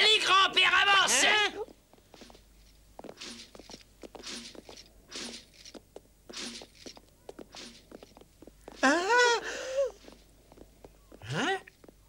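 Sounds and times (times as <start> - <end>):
footsteps on stone floor: 1.6 - 9.0, 9.9 - 12.0
light scuffs and clicks: 1.7 - 8.9, 9.9 - 12.0.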